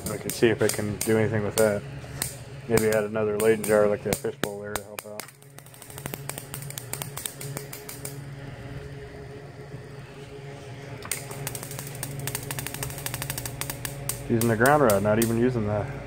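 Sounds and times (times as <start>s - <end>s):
electrical arcing crackle: 0.0s - 10.2s, 10.8s - 15.8s
transformer mains hum: 0.0s - 16.0s.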